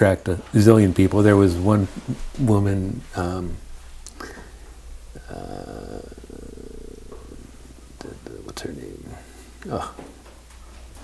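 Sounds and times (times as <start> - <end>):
man's creaky hesitation sound: 5.1 - 10.2.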